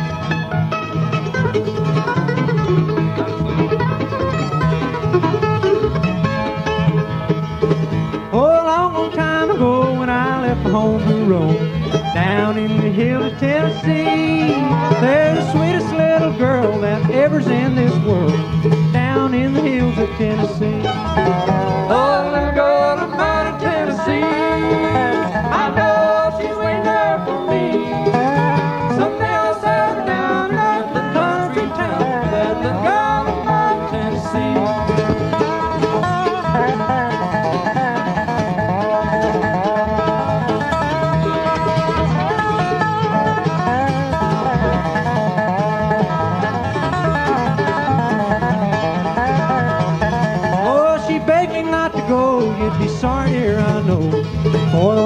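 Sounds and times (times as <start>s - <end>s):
bluegrass band playing: 0.0s - 55.0s.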